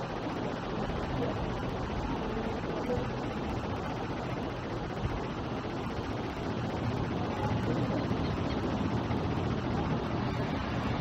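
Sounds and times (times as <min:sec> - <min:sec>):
wind: 0:00.0 - 0:11.0
faint distant voices: 0:00.4 - 0:11.0.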